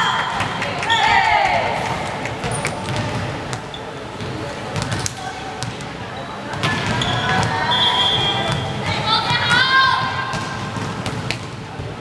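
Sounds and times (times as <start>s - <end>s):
murmur of players' voices: 0.0s - 12.0s
referee's whistle: 7.0s - 8.8s.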